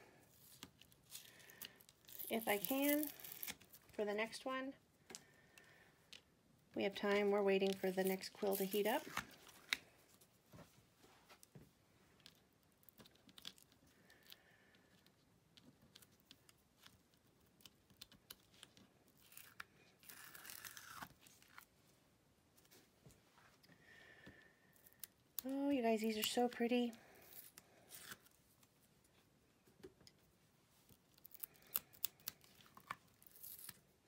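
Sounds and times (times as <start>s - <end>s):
tape and foil peeling: 0.4s - 3.8s, 19.2s - 21.6s, 31.1s - 33.8s.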